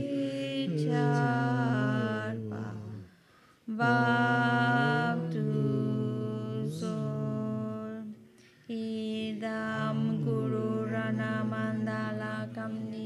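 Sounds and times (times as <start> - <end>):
slow prayer chanting: 0.0 - 13.0.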